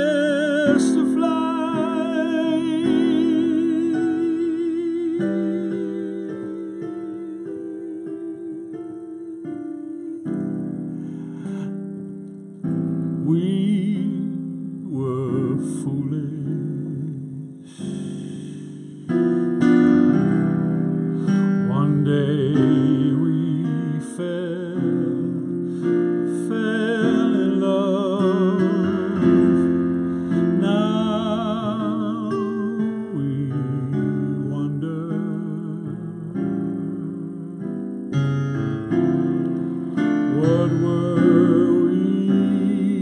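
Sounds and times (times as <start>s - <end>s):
man singing softly: 0.0s - 11.8s, 13.2s - 20.4s, 21.2s - 37.6s, 39.6s - 43.0s
piano chords ringing: 0.0s - 43.0s.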